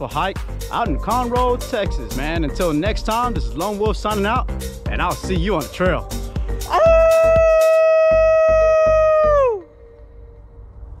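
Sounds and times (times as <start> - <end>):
man imitating wolf howl: 6.7 - 9.7.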